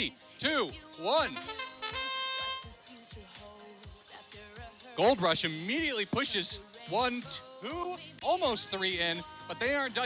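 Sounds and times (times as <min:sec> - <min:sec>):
background music with steady beat: 0:00.0 - 0:10.0
buzzer steady tone: 0:01.4 - 0:02.8.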